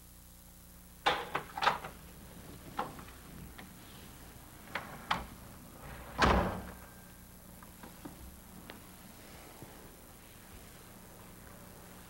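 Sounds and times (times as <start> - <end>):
door shutting: 1.1 - 2.0, 4.6 - 7.0.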